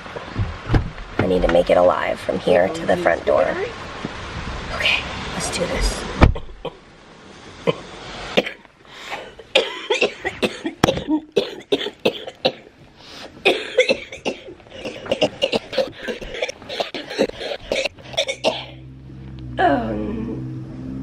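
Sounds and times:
woman coughing harshly: 9.5s - 12.7s, 13.5s - 18.8s.

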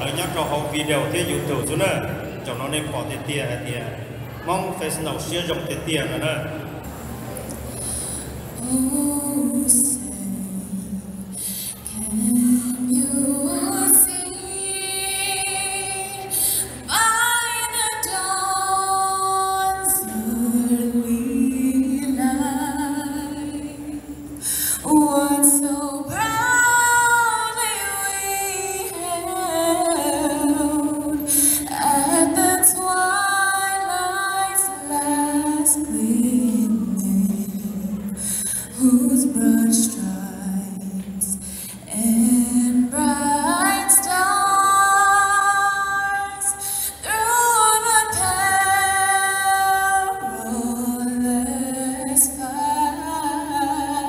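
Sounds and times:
singer breathing: 7.7s - 8.6s, 11.2s - 11.9s, 16.3s - 16.9s, 24.4s - 24.8s, 31.3s - 31.7s, 38.1s - 38.8s, 41.4s - 41.9s, 46.6s - 47.0s
woman singing into a microphone: 7.8s - 54.0s.

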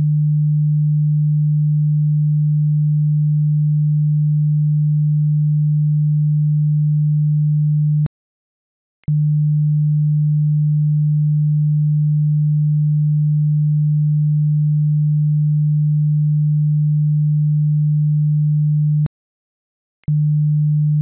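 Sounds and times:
low sine test tone: 0.0s - 8.1s, 9.1s - 19.1s, 20.0s - 21.0s.

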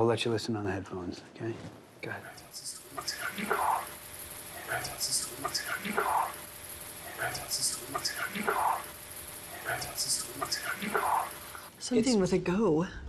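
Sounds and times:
sharp hiss: 2.3s - 11.7s.

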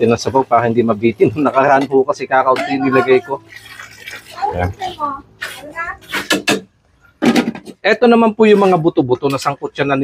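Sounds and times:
water pouring into stew: 2.7s - 4.9s.

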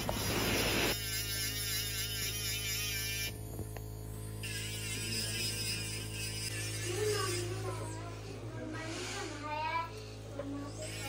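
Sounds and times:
dental handpiece whirring: 0.0s - 11.0s.

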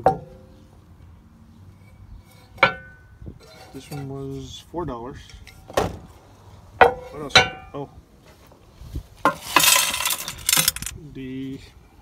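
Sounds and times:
jewelry clattering onto plastic: 9.5s - 10.9s.

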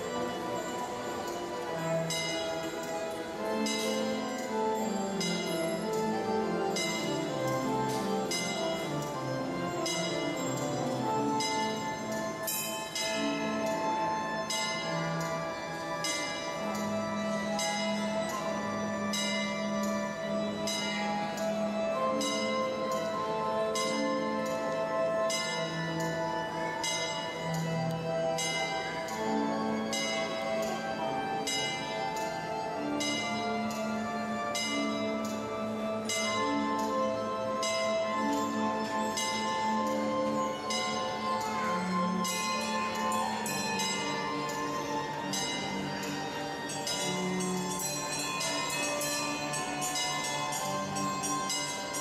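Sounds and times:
clock bell ringing: 0.0s - 52.0s
music: 0.0s - 52.0s.

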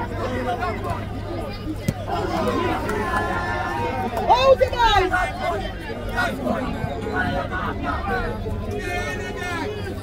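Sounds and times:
voices chattering and calling out: 0.0s - 10.0s.

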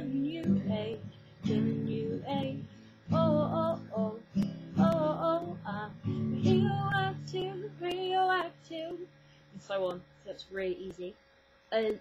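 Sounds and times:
acoustic guitar strumming: 0.0s - 9.0s
girl singing: 0.0s - 10.0s.

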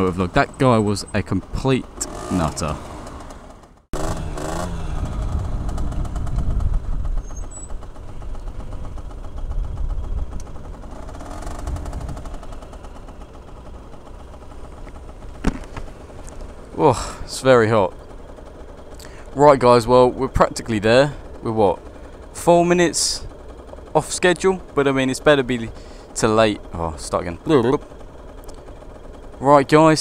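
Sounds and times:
motorcycle engine rumbling: 0.0s - 30.0s
road noise: 0.0s - 30.0s.

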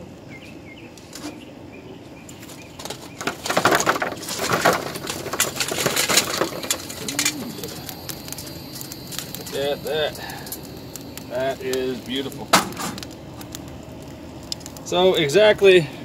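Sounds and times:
charcoal clattering into tin can: 2.9s - 7.9s, 11.5s - 13.0s.

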